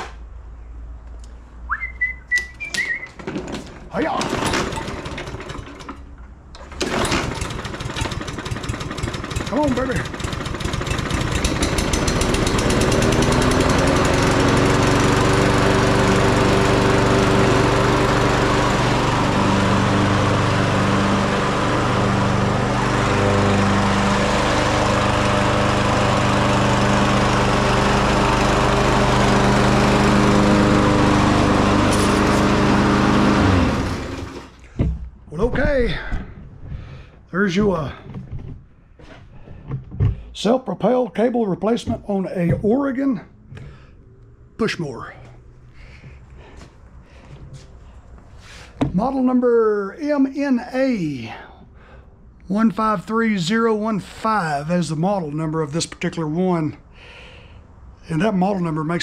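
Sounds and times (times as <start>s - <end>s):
lawn mower engine running: 2.8s - 34.8s, 50.0s - 55.6s.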